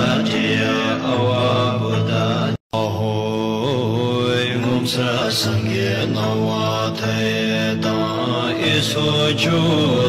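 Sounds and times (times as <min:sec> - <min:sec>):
low-voiced mantra chanting: 0:00.0 - 0:10.0.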